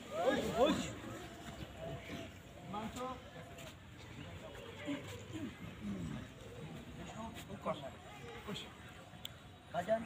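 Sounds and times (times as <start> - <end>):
distant shouting voices: 0.0 - 2.5.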